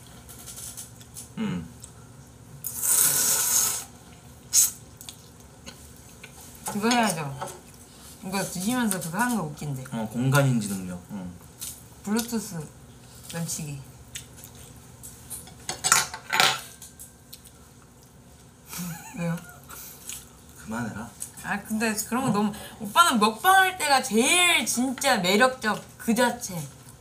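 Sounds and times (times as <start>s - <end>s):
slurping noodles: 2.6s - 3.9s.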